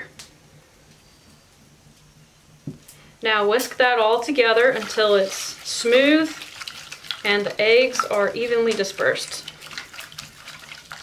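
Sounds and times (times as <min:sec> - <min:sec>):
sugar pouring hiss: 0:03.5 - 0:11.0.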